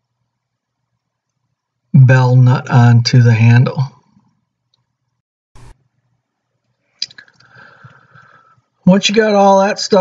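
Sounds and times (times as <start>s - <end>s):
faint breathy noise: 6.8s - 8.8s.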